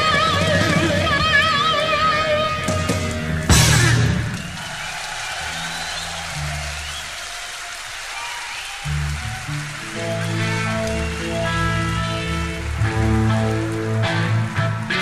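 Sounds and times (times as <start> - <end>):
electric guitar and bass ringing: 0.0 - 4.6, 9.9 - 15.0
audience applause: 1.6 - 15.0
cymbal crash: 3.5 - 4.5.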